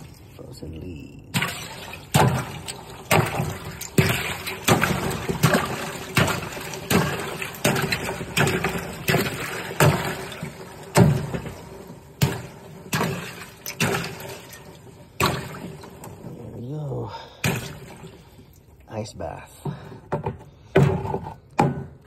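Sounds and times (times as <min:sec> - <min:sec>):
water splashing and sloshing: 0:00.0 - 0:22.0.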